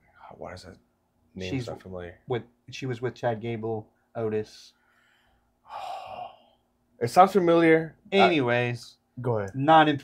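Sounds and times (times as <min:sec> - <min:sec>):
man sighing: 0:05.7 - 0:06.5.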